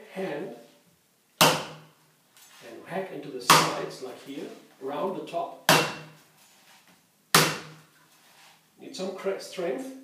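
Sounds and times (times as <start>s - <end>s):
knife chopping coconut: 1.4s - 1.8s, 3.5s - 3.8s, 5.7s - 6.2s, 7.4s - 7.8s.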